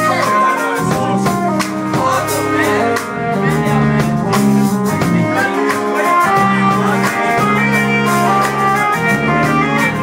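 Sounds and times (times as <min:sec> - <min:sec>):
jazz-fusion band playing: 0:00.0 - 0:10.0.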